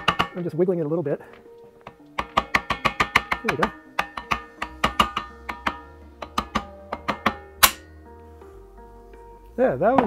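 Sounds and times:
mallet tapping metal with ring: 0:00.0 - 0:00.4, 0:01.9 - 0:07.9.

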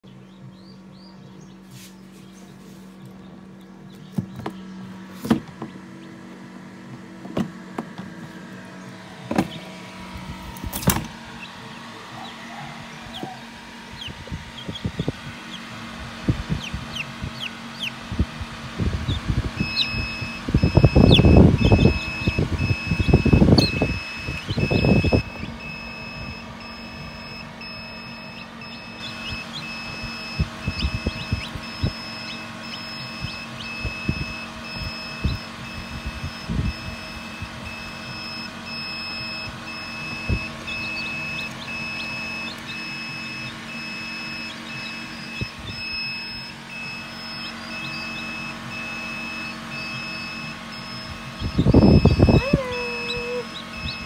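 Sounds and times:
low hum: 0:00.0 - 0:54.0
electronic alarm beeping: 0:18.9 - 0:54.0.

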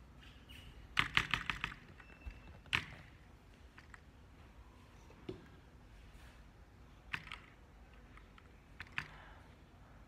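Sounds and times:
computer keyboard keystrokes: 0:01.0 - 0:03.2, 0:07.1 - 0:09.2.

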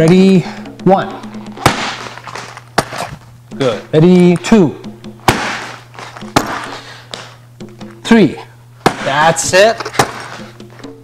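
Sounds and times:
kick smacking into pad: 0:01.6 - 0:02.1, 0:05.2 - 0:06.7, 0:08.8 - 0:09.2.

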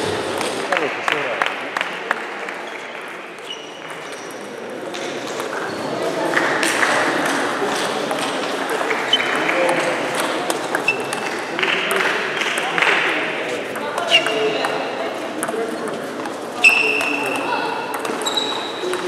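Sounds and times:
murmur of voices: 0:00.0 - 0:19.0
table tennis ball clicking: 0:15.4 - 0:18.2.

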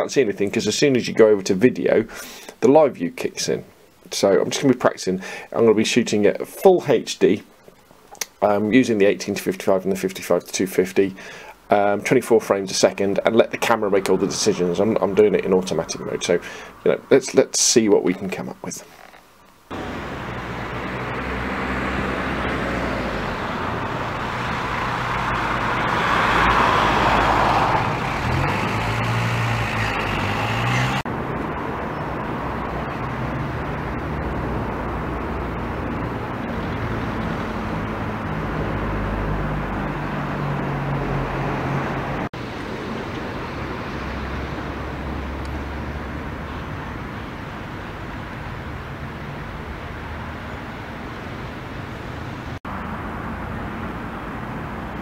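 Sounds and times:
road traffic engines: 0:05.2 - 0:05.6, 0:11.2 - 0:55.0
vehicle passing close: 0:12.8 - 0:17.2, 0:19.7 - 0:47.2.

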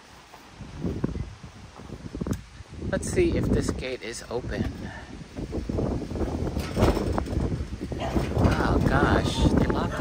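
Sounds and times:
wind rumbling on microphone: 0:00.4 - 0:10.0
metal gate knocking and clinking: 0:06.4 - 0:09.2.

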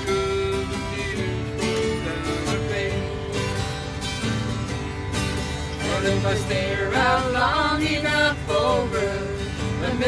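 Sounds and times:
acoustic guitar: 0:00.0 - 0:10.0
mandolin strumming: 0:00.0 - 0:10.0.

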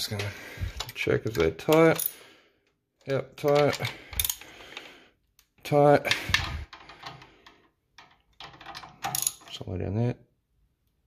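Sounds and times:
hand tool clicking on hose clamp: 0:03.4 - 0:04.4.

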